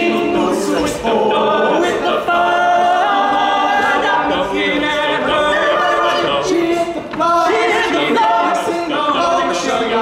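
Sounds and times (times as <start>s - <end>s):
male a cappella group singing: 0.0s - 10.0s.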